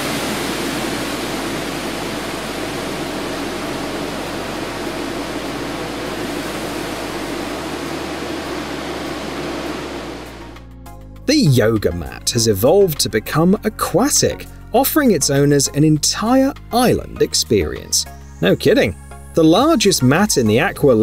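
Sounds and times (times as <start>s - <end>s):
gas discharge rushing hiss: 0.0s - 10.6s.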